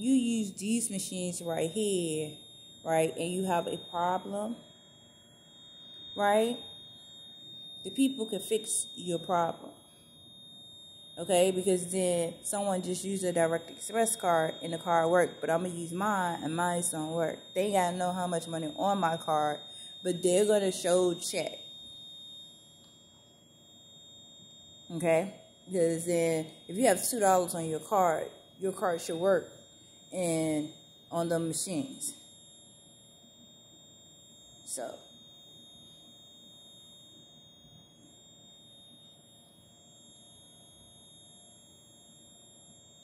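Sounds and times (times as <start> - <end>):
high-pitched electrical whine: 0.0 - 43.0.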